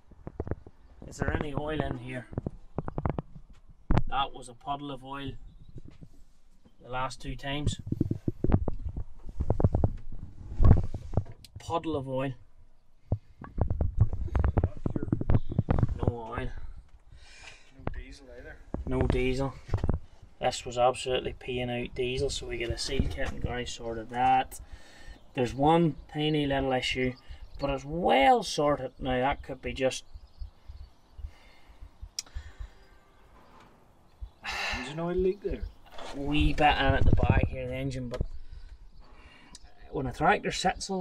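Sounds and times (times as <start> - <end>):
low rumble on microphone: 0.0 - 16.9, 28.9 - 39.1
camera handling knocks and rustles: 2.3 - 4.1.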